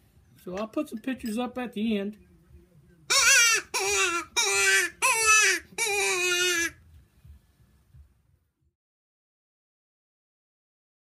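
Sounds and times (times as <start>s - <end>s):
reed game call blowing: 3.1s - 6.7s.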